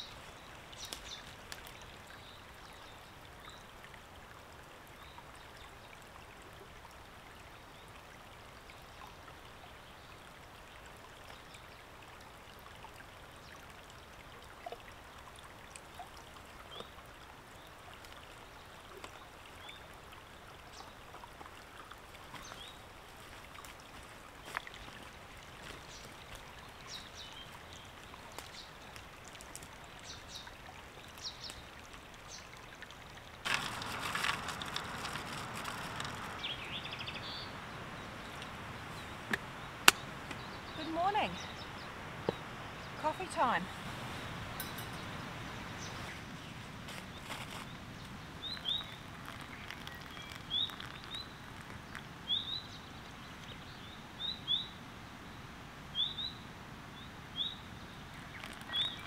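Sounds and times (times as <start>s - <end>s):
stream trickling over stones: 0.0s - 59.0s.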